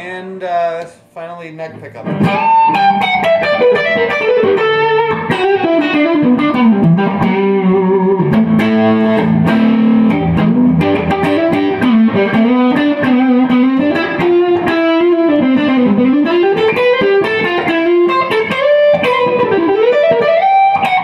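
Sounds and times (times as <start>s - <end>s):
electric guitar lead line: 2.0s - 21.0s.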